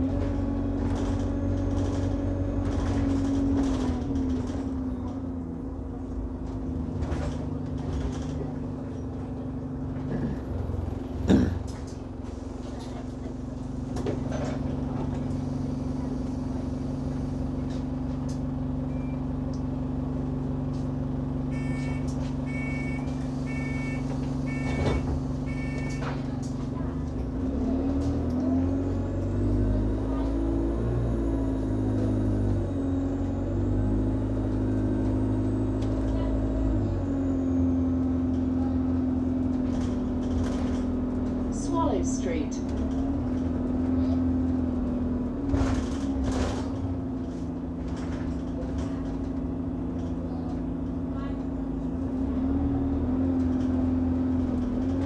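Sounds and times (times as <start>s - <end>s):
bus diesel engine: 0.0s - 55.0s
short high beeps: 21.5s - 26.0s.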